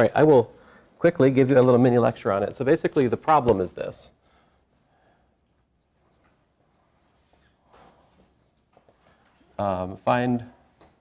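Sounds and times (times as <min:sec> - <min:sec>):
marker scratching on whiteboard: 0:03.0 - 0:09.0.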